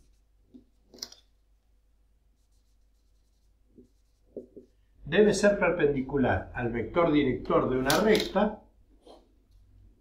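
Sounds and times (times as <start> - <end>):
marker writing on whiteboard: 2.4 - 4.8.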